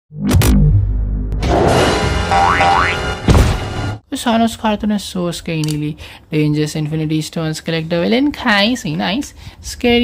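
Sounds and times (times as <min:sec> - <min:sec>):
cartoon background music: 0:00.2 - 0:04.0
sudden hit: 0:00.2 - 0:04.0.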